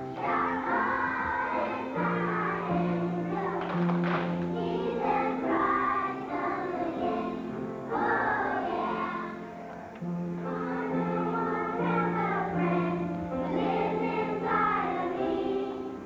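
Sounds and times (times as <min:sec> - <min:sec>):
children singing together: 0:00.0 - 0:16.0.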